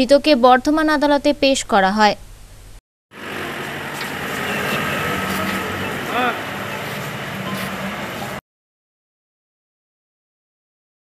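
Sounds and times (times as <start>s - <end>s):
van engine pulling away: 3.1s - 8.4s
indistinct voices: 3.2s - 8.4s.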